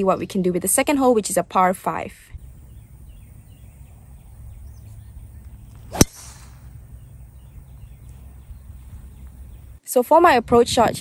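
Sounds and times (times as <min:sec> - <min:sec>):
golf club striking ball: 0:05.4 - 0:07.5.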